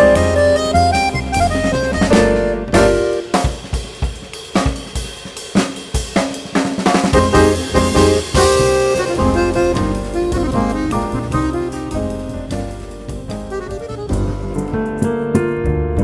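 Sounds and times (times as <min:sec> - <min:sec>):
button accordion: 0:00.0 - 0:03.0, 0:07.4 - 0:14.6
double bass: 0:00.0 - 0:03.2, 0:07.2 - 0:16.0
grand piano: 0:00.0 - 0:03.6, 0:07.2 - 0:16.0
jazz quartet playing: 0:00.0 - 0:04.0, 0:07.0 - 0:15.7
drum kit striking sharply: 0:00.0 - 0:16.0.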